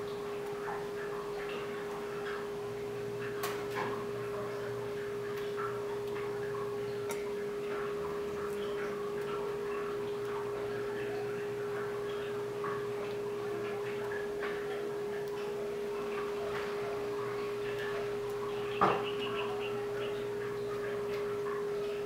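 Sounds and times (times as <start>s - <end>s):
saucepan simmering with soft pops: 0.0s - 22.0s
steady hum: 0.0s - 22.0s.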